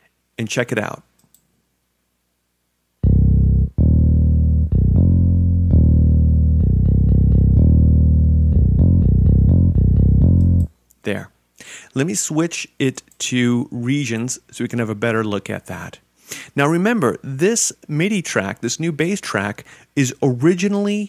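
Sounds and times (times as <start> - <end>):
bass guitar line: 3.0 - 10.7.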